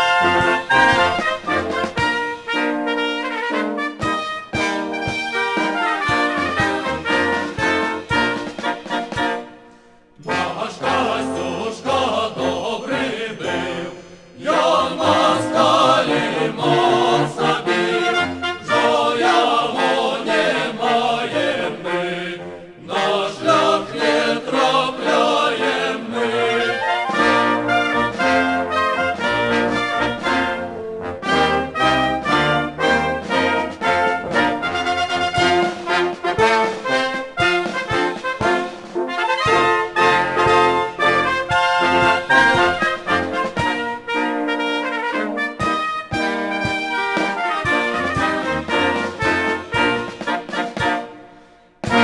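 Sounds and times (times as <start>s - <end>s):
brass band playing a march: 0.0s - 52.0s.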